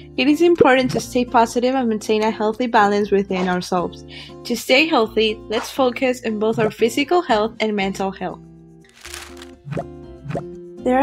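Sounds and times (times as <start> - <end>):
light background music: 0.0 - 11.0
woman narrating: 0.2 - 3.6, 4.5 - 8.0.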